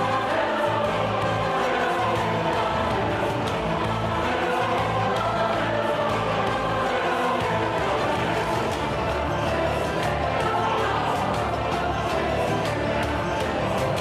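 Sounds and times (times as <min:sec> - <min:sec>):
choir singing chords: 0:00.0 - 0:14.0.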